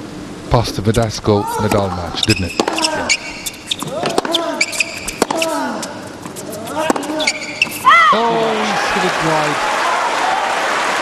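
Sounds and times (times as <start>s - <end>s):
tennis rackets striking ball: 2.2s - 7.8s
shoe squeaks on court: 2.2s - 7.9s.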